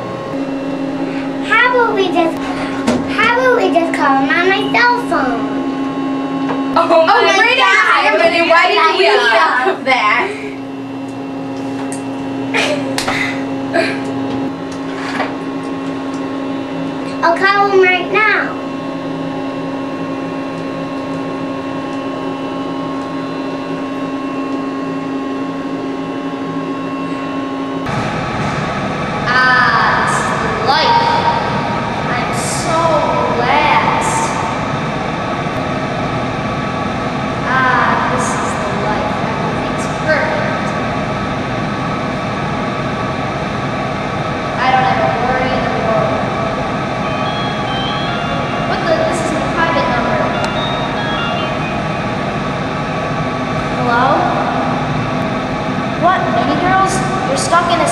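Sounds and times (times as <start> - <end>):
steady machine hum: 0.0 - 57.9.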